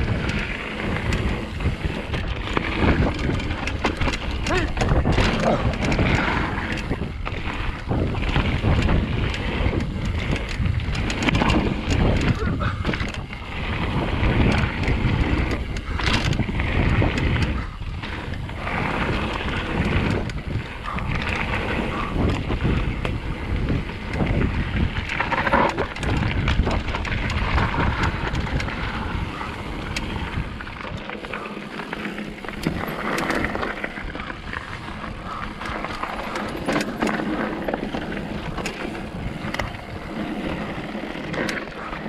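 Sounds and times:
bike clicking and rattling: 0.0 - 42.0
bike tyres on loose stones: 0.0 - 42.0
wind buffeting microphone: 0.0 - 42.0.

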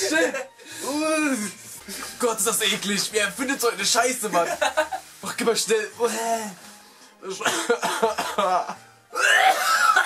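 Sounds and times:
background music: 0.0 - 10.0
man coughing and gagging: 7.4 - 10.0
man retching: 7.5 - 10.0.

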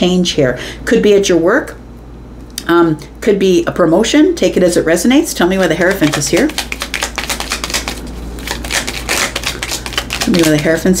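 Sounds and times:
cards being shuffled: 5.6 - 11.0.

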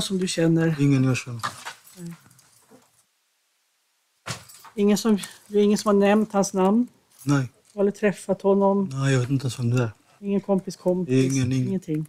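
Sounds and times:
man speaking a word: 0.7 - 1.5, 7.3 - 7.5.

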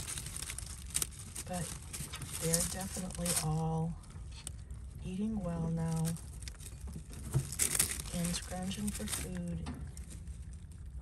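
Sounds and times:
hay and straw rustling: 0.0 - 4.5, 5.4 - 10.6
low steady rumble: 0.0 - 11.0.

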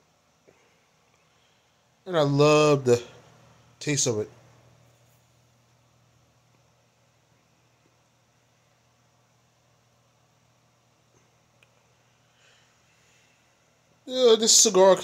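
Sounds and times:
faint steady low hum: 0.0 - 15.0.

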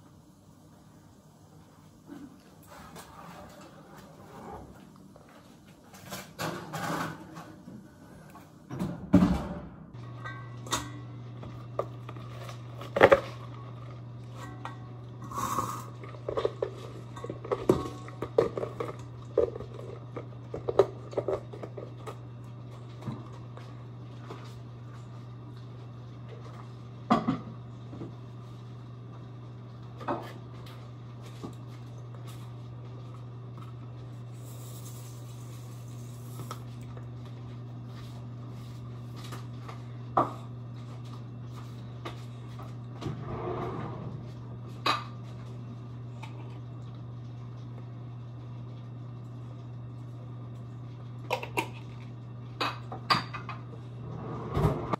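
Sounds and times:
dishes knocking and clinking: 52.6 - 53.7.

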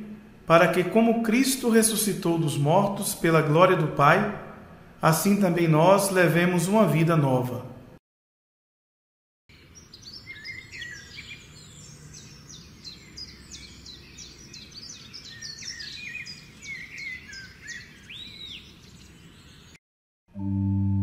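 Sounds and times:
low steady background noise: 0.0 - 8.0
birds chirping and singing: 9.5 - 19.8.

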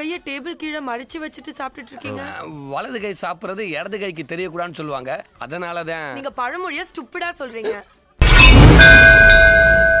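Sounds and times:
bell-like metallic ringing tones: 8.2 - 10.0.

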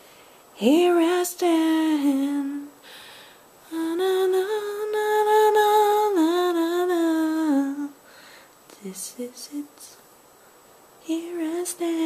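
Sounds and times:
woman singing: 0.6 - 2.8, 3.7 - 8.0, 8.7 - 10.0, 11.0 - 12.0.

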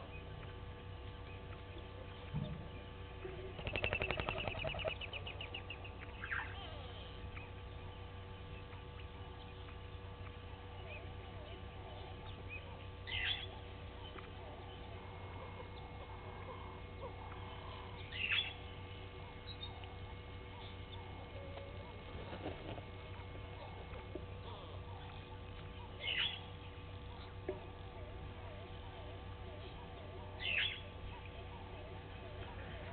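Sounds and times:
steady electrical hum: 0.0 - 32.9
wild birds calling: 0.0 - 32.9
rapid rattling bird call: 3.0 - 9.2.

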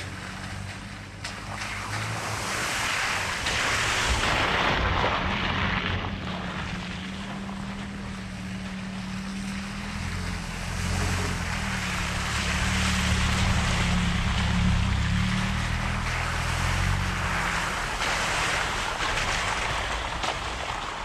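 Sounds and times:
tyres splashing through puddles: 0.0 - 21.0
vehicle engines at low speed: 0.0 - 21.0.

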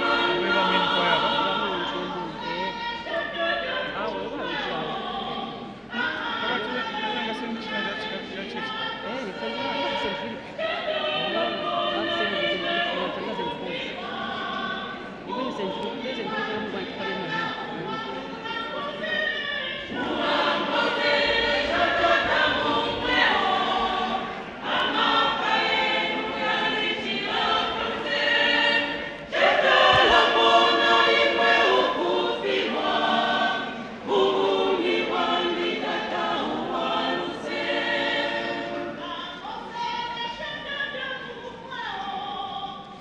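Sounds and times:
church choir singing: 0.0 - 43.0.

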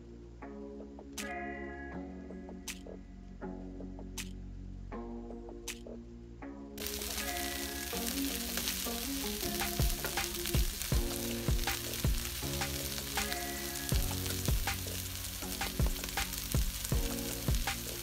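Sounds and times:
vegetables sizzling in oil: 6.8 - 18.0.

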